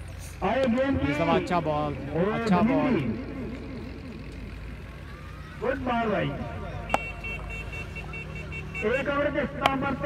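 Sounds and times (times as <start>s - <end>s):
faint indistinct voices: 3.5s - 10.0s.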